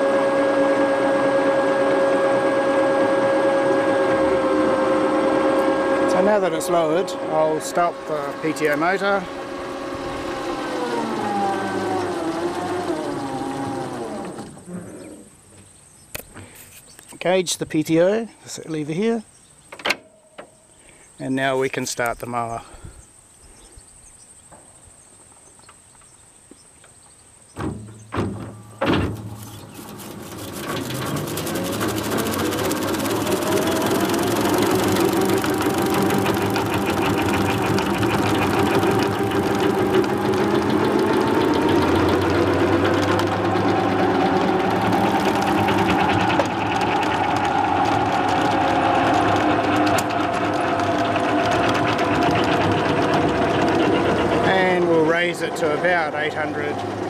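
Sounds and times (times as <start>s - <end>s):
electric motor and mower whine: 0.0s - 17.1s, 27.6s - 57.0s
drive knocking: 27.6s - 57.0s.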